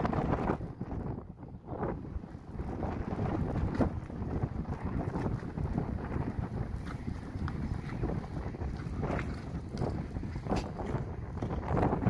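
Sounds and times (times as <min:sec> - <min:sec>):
wind buffeting microphone: 0:00.0 - 0:12.0
hooves on turf: 0:03.2 - 0:11.7.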